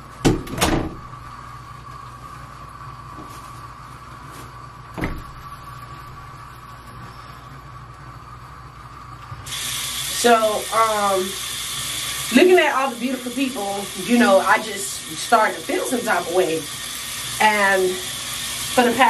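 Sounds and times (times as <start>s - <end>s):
steady electrical hum: 0.0s - 19.0s
door or cupboard knocks: 0.2s - 1.0s, 5.0s - 5.4s
tap water running: 8.7s - 19.0s.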